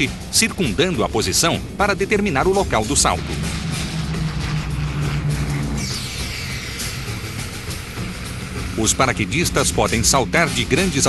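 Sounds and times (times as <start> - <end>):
background music: 0.0 - 11.0
turboprop engines droning overhead: 0.0 - 11.0
high sound falling in pitch: 2.4 - 9.4.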